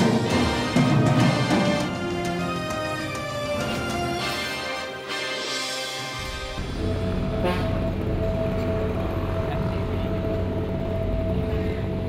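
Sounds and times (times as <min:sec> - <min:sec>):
low traffic rumble: 0:06.0 - 0:12.0.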